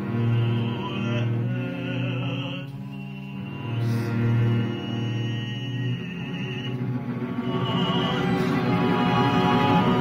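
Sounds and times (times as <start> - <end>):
string orchestra playing slowly: 0.0 - 10.0.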